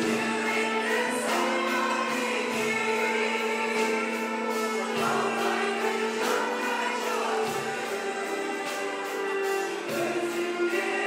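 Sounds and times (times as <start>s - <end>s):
frame drum: 0.0s - 11.0s
instrumental ensemble: 0.0s - 11.0s
mixed choir singing: 0.0s - 11.0s.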